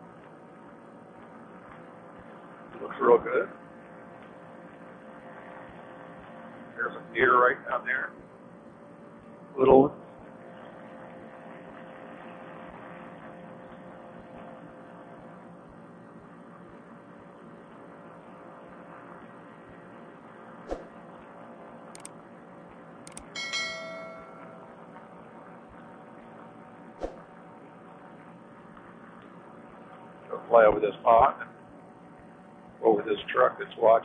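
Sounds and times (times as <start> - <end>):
paratrike motor droning: 0.0 - 34.0
sharp clicks: 21.9 - 22.1, 23.0 - 23.3
short bell chime: 23.3 - 24.8.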